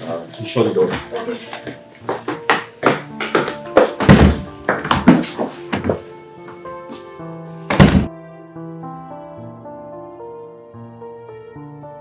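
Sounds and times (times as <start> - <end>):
background music with sustained notes: 0.0 - 12.0
heavy door slams: 4.0 - 4.5, 7.7 - 8.1
knocks and thuds: 4.0 - 5.2, 7.7 - 8.1.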